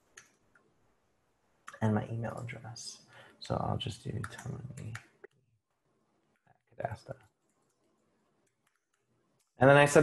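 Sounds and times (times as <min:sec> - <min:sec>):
keyboard typing: 0:04.0 - 0:05.4, 0:07.2 - 0:09.6.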